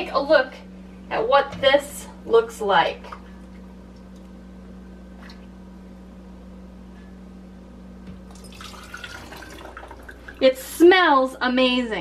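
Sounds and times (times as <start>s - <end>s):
steady low hum: 0.0s - 12.0s
liquid pouring into strainer: 8.3s - 10.4s.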